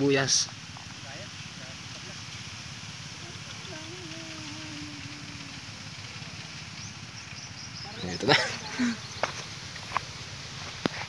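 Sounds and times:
water flowing along a furrow: 0.0 - 11.0.

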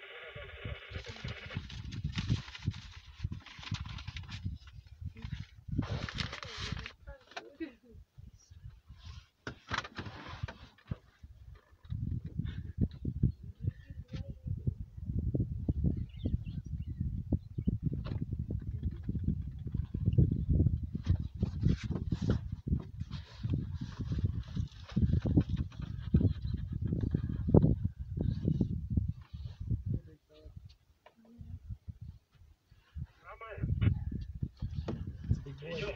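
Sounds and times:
wind buffeting microphone: 0.6 - 7.1, 11.2 - 30.7, 31.3 - 35.9.

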